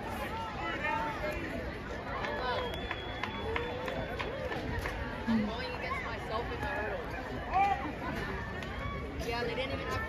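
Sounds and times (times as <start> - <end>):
indistinct chatter of spectators: 0.0 - 10.0.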